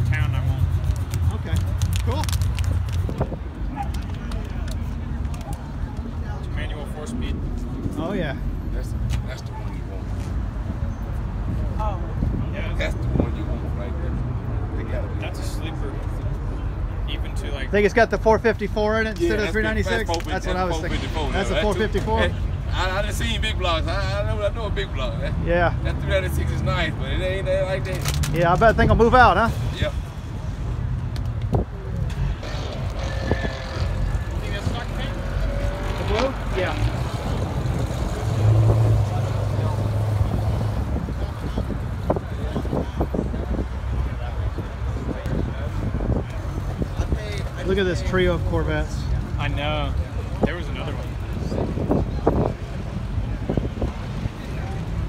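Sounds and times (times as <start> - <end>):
car engine rumbling: 0.0 - 47.5
people talking: 14.8 - 30.0.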